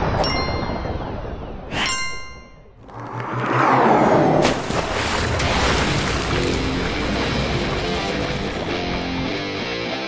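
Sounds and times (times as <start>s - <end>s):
bright metallic dings: 0.1s - 2.8s.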